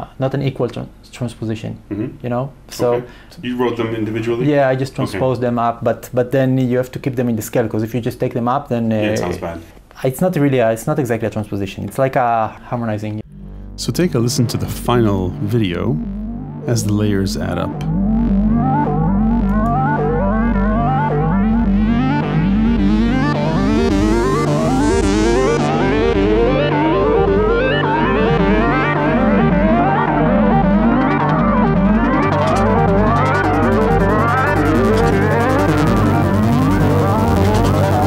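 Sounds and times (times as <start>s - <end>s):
microtonal synthesizer melodies: 13.2s - 38.0s
pulsing synth bass: 13.2s - 38.0s.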